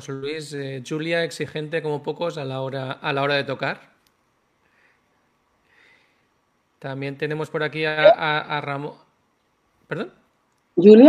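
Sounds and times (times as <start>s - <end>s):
faint breaths: 4.6s - 6.4s.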